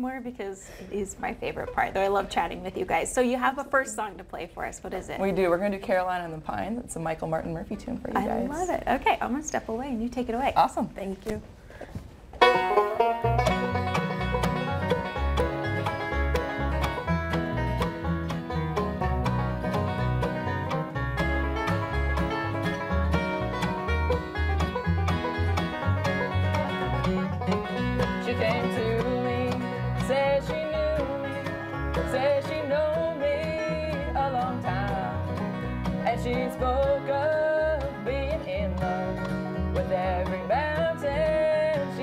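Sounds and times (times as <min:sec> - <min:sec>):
bluegrass band playing: 0:00.6 - 0:08.7, 0:12.4 - 0:42.0
fiddle melody: 0:12.4 - 0:42.0.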